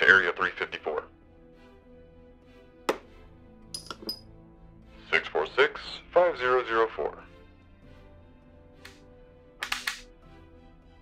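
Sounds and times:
quiet background music: 0.0 - 11.0
man speaking: 5.1 - 7.3.

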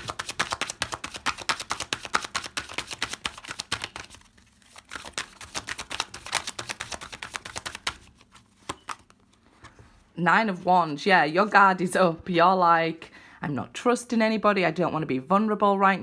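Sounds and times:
cards being shuffled: 0.0 - 9.8.

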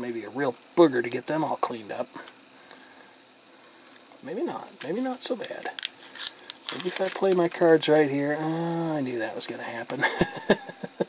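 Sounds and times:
protective paper peeling crinkles: 3.8 - 9.4.

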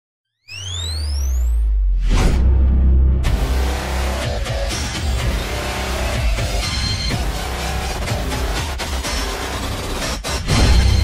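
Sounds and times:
rising electronic tone: 0.4 - 4.1.

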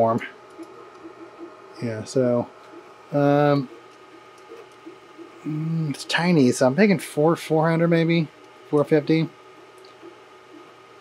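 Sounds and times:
man speaking: 0.0 - 0.4, 1.8 - 2.5, 3.1 - 3.8, 5.4 - 9.3
man's hesitation sound: 4.5 - 6.7.

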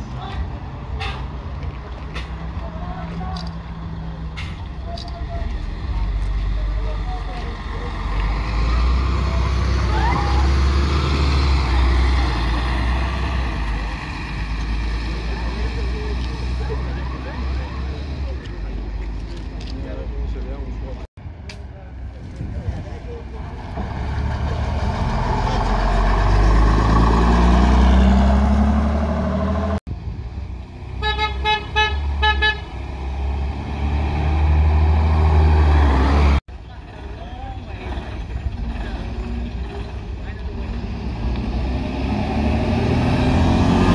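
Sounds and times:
diesel bus engines accelerating: 0.0 - 43.9
bus horn toots: 31.0 - 32.8.

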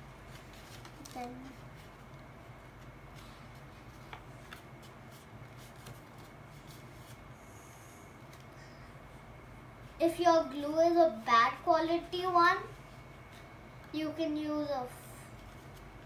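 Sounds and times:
paper and ribbon rustling: 0.0 - 7.3
steady low hum: 0.0 - 16.0.

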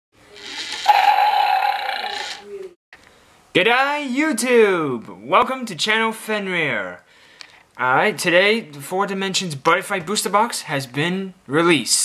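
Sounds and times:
loud animal-like roar: 0.4 - 2.4.

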